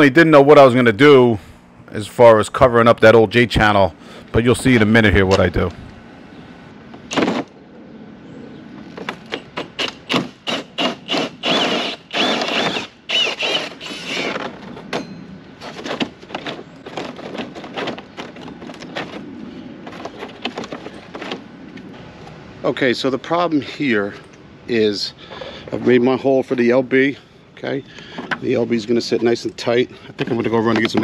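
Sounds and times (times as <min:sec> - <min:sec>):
drill with hole saw cutting siding: 0:09.6 - 0:14.6.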